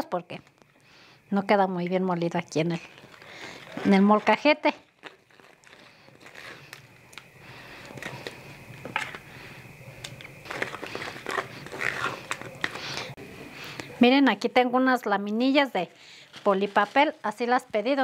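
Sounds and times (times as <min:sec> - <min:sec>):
spoon scraping plastic strainer: 0:10.5 - 0:12.8.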